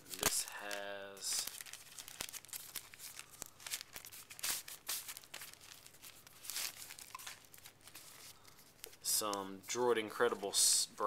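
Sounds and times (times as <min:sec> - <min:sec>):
paper rustling and crinkling: 0:00.0 - 0:09.7.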